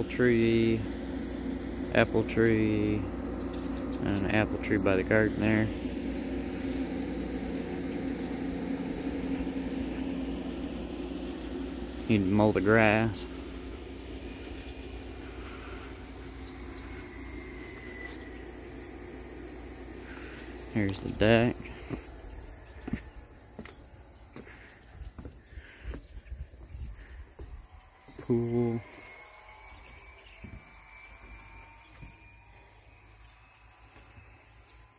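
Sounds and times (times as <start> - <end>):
vehicle engine droning: 0.0 - 26.0
crickets trilling: 0.0 - 34.9
footsteps on wooden deck: 21.7 - 28.3, 30.4 - 32.2.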